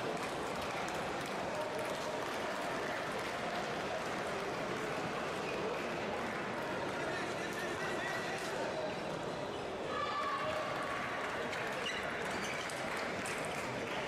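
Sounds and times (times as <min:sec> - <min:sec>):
crowd murmur in a large hall: 0:00.0 - 0:14.0.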